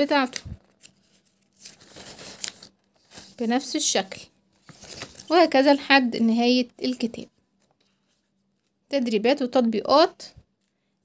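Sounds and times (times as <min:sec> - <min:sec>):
paper pages turning: 0:00.0 - 0:05.6.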